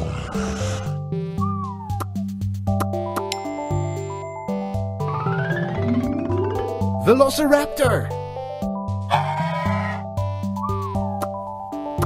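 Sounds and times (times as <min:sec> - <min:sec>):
upbeat background music: 0:00.0 - 0:12.0
rising then falling tone: 0:05.1 - 0:06.8
cartoon dinosaur cry: 0:09.1 - 0:10.1.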